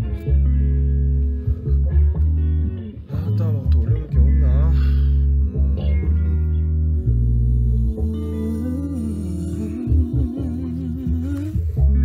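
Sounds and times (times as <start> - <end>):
bass guitar and guitar music: 0.0 - 12.0
wavering voice: 3.0 - 12.0.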